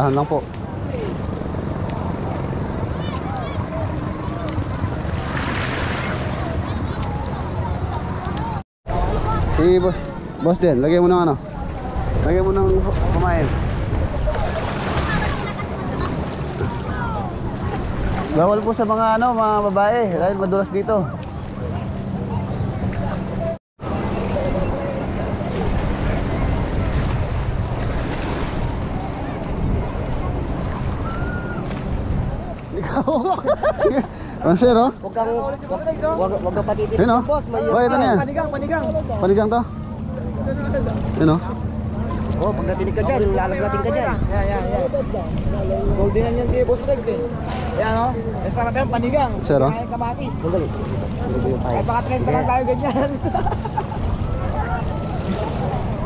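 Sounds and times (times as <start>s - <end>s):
sea water washing at shore: 0.0s - 56.0s
wind buffeting microphone: 21.1s - 56.0s.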